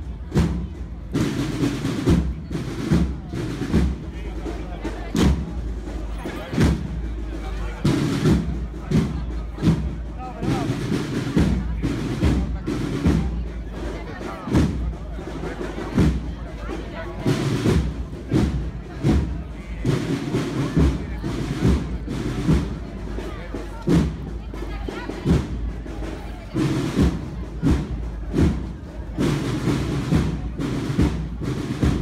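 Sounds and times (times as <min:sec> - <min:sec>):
crowd chatter: 0:00.0 - 0:32.0
drums beating procession rhythm: 0:00.0 - 0:32.0.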